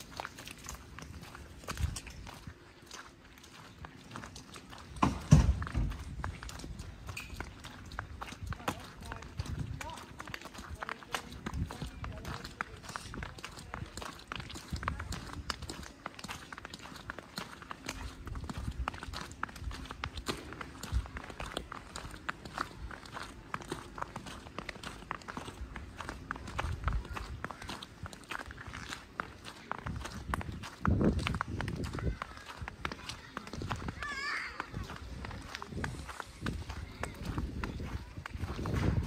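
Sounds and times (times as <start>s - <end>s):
footsteps in snow: 0.0s - 5.0s.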